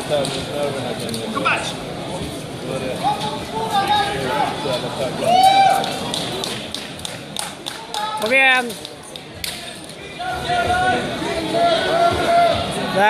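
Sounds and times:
background chatter: 0:00.0 - 0:13.0
people shouting: 0:10.2 - 0:12.7.

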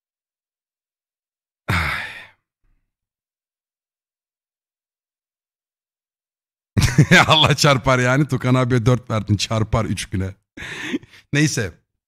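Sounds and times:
man sighing: 0:01.7 - 0:02.4.

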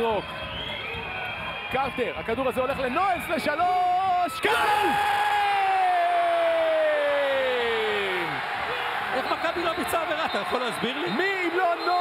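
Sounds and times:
arena crowd cheering: 0:00.0 - 0:12.0.

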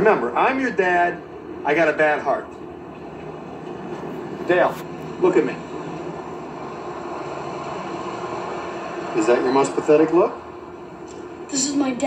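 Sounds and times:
background rumble and hiss: 0:00.0 - 0:12.0.

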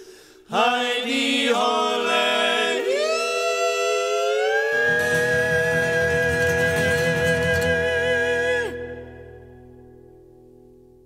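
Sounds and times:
men singing in harmony: 0:00.5 - 0:09.4
guitar accompaniment: 0:02.9 - 0:11.0.

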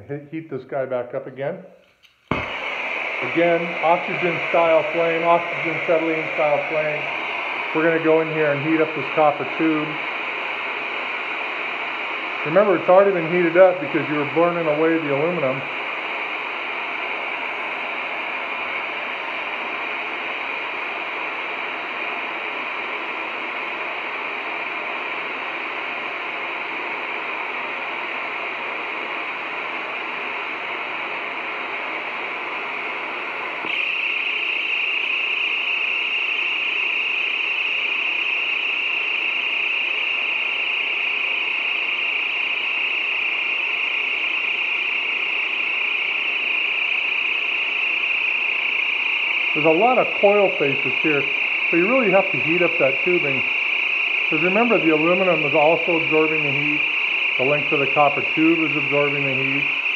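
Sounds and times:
torch hissing: 0:02.3 - 0:15.7.

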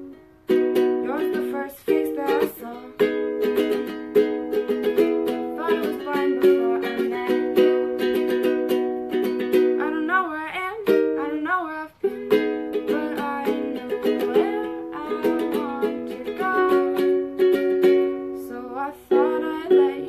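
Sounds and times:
person singing: 0:00.0 - 0:20.0
ukulele strumming chords: 0:00.0 - 0:20.0.

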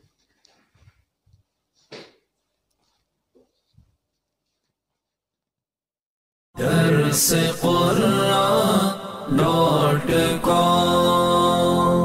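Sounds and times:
melodic vocal chant over music: 0:06.6 - 0:12.0.

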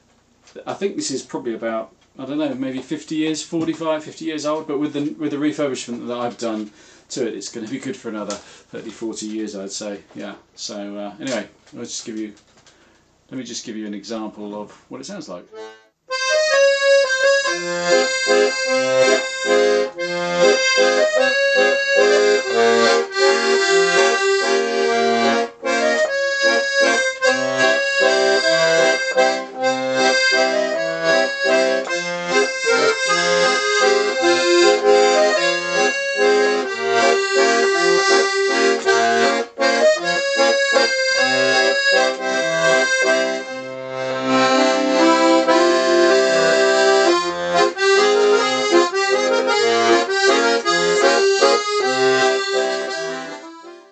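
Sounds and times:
piano accordion playing a tune: 0:15.5 - 0:53.9.

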